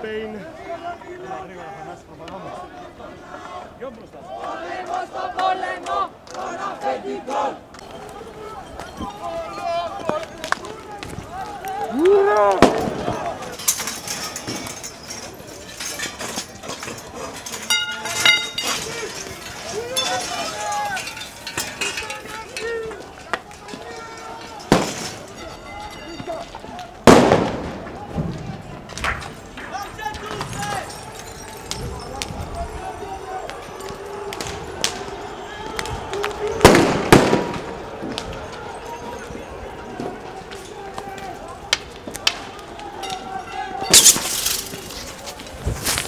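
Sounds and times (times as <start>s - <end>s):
crowd shouting: 0.0s - 45.6s
thrown objects knocking and clattering: 12.6s - 35.0s
loud explosive bangs: 24.7s - 25.3s, 27.0s - 28.7s, 36.6s - 37.8s
sharp cracks: 27.0s - 32.3s, 43.9s - 46.0s.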